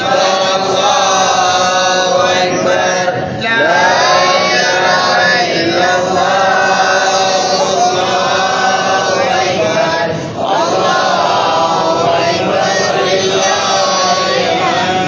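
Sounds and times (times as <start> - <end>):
devotional chanting voice: 0.0 - 15.0.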